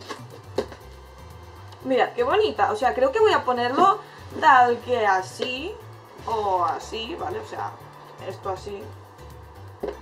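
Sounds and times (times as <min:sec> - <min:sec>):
background music with ticking beat: 0:00.0 - 0:10.0.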